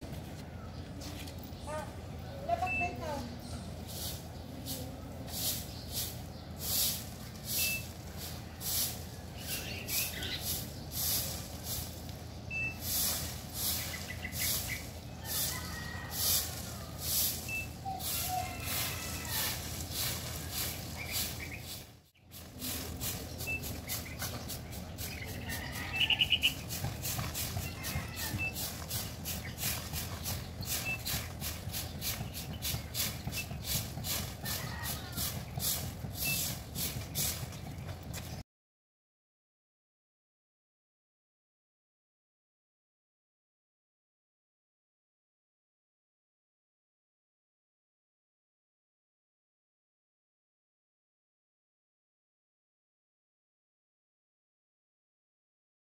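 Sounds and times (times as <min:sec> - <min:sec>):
broom sweeping on concrete: 0:03.7 - 0:38.4
high chirp: 0:07.5 - 0:08.0, 0:12.5 - 0:14.8.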